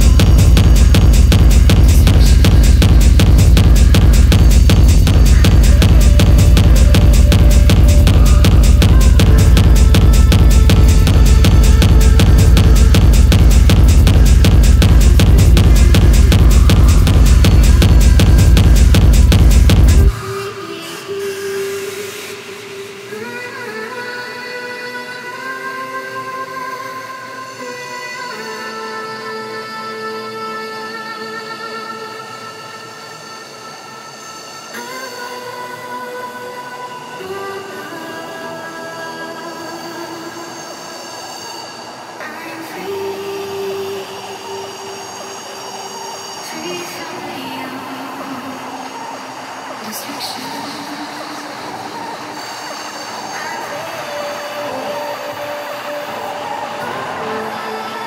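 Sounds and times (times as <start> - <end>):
held synth chords: 0.0 - 24.2.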